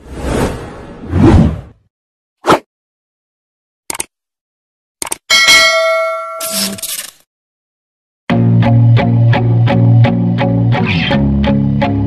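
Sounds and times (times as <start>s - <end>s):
notification bell ringing: 5.3s - 6.8s.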